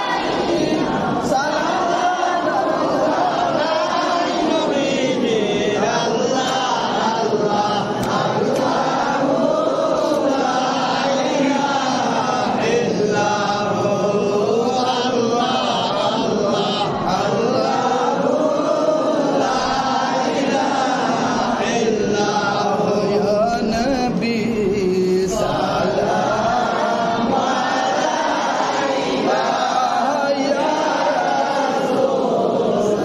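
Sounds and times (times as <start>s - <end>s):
men chanting together: 0.0s - 33.0s.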